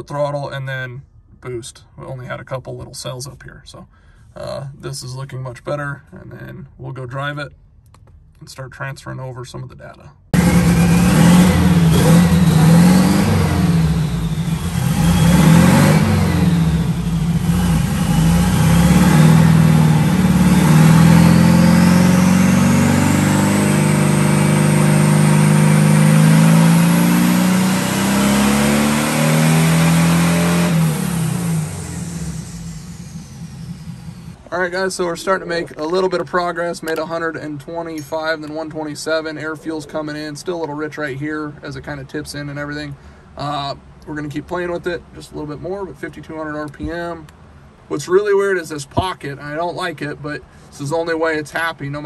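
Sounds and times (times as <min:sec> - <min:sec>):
car engine revving: 0:10.4 - 0:34.4
high whine: 0:10.4 - 0:35.2.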